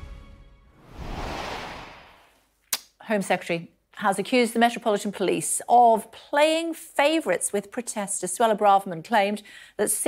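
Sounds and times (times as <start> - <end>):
noisy whoosh: 0.8 - 2.4.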